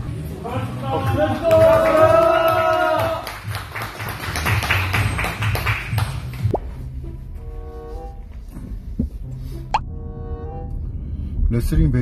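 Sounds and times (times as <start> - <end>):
people clapping: 1.0 - 6.5.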